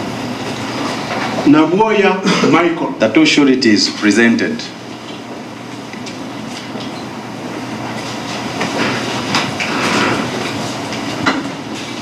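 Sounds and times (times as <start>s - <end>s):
crowded room background noise: 0.0s - 12.0s.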